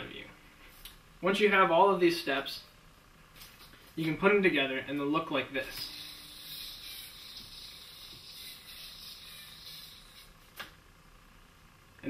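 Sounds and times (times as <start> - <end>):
spinning yo-yo whooshing: 5.6 - 10.4.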